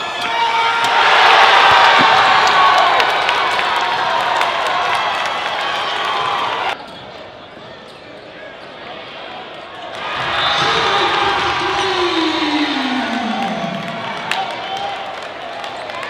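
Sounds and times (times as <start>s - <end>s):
crowd cheering: 0.0s - 6.8s, 9.8s - 16.0s.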